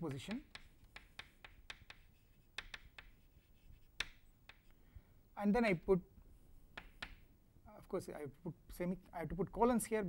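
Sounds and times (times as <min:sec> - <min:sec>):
chalk scratching on chalkboard: 0:00.4 - 0:04.7.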